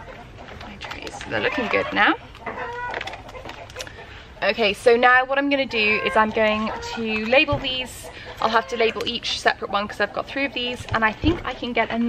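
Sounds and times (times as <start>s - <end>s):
chicken calling: 0.0s - 11.1s.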